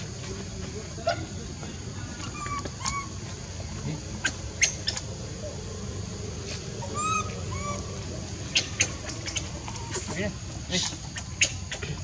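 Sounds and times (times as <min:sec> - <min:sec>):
steady high hiss: 0:00.0 - 0:12.0
high-pitched calls and chirps: 0:02.0 - 0:03.4, 0:04.2 - 0:05.2, 0:06.8 - 0:12.0.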